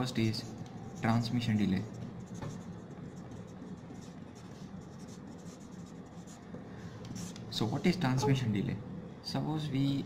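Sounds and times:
marker writing on board: 0:00.3 - 0:06.4, 0:07.1 - 0:08.4.

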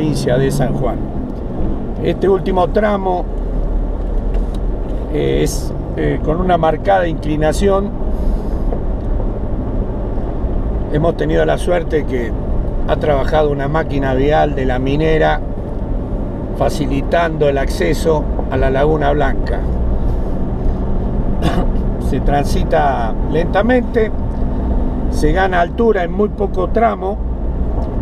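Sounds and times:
vehicle engine rumble: 0:00.0 - 0:28.0.

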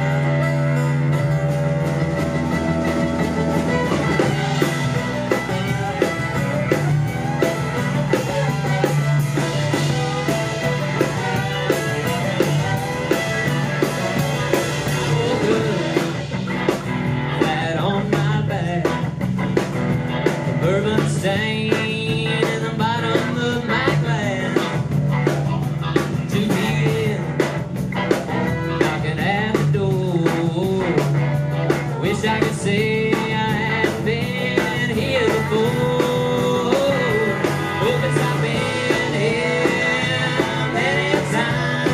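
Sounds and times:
fiddle: 0:00.0 - 0:16.9
bass guitar: 0:00.0 - 0:41.9
drum kit beat: 0:00.0 - 0:41.9
electric and acoustic guitars: 0:00.0 - 0:41.9.

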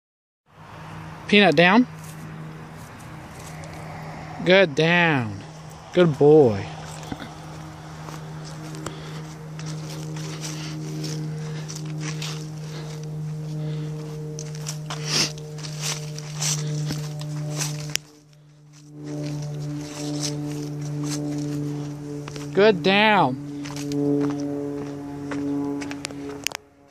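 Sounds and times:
vehicle engine low hum: 0:00.5 - 0:26.9.

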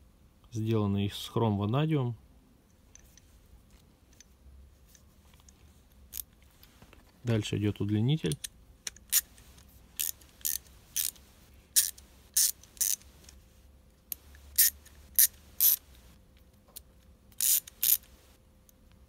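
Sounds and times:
ratchet metallic clicks: 0:10.0 - 0:13.1, 0:14.1 - 0:16.1, 0:17.3 - 0:18.3.

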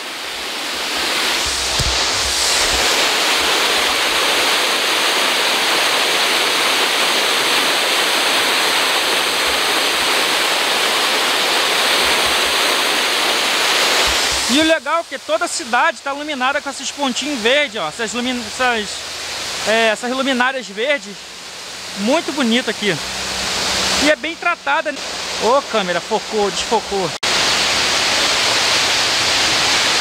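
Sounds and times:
waterfall rushing over rocks: 0:00.0 - 0:30.0.

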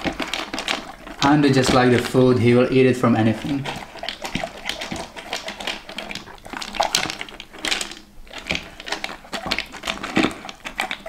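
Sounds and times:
dog crunching kibble: 0:00.0 - 0:11.0
kibble rattling in bowl: 0:00.0 - 0:11.0.

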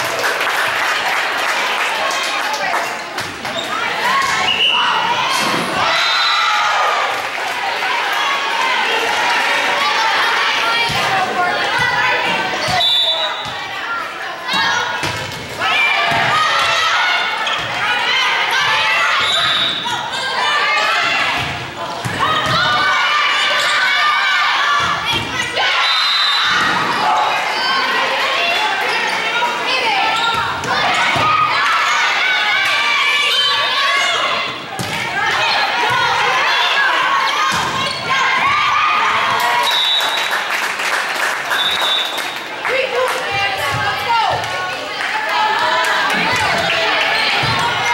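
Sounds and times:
players and spectators calling out: 0:00.7 - 0:47.9.

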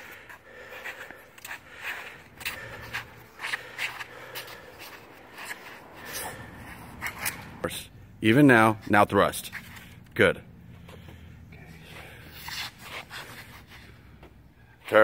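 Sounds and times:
swishes and scuffs on hard court: 0:00.0 - 0:07.8, 0:08.8 - 0:10.0, 0:10.8 - 0:15.0.

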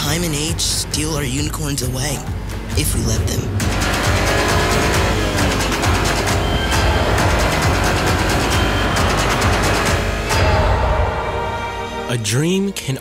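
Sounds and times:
dramatic soundtrack music: 0:00.0 - 0:13.0
deep low rumble: 0:02.6 - 0:04.2.

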